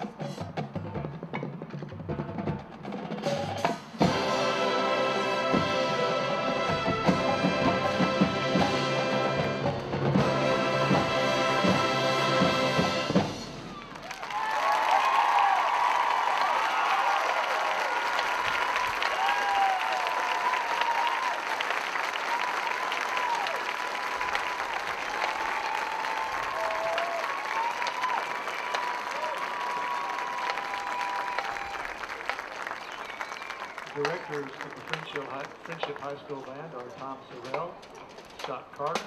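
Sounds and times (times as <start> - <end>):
marching band chord: 3.9 - 13.7
crowd applauding and cheering: 4.0 - 37.8
crowd whooping: 13.4 - 35.8.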